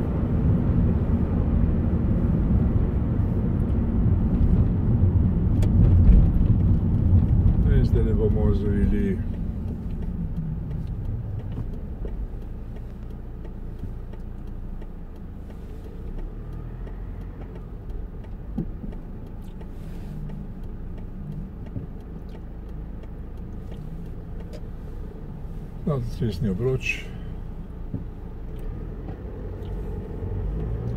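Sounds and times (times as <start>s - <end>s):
car engine and road noise: 0.0s - 30.9s.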